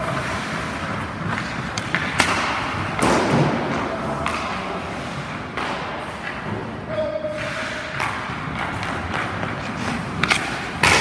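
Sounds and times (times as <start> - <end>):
hockey pucks and sticks knocking: 0.0 - 11.0.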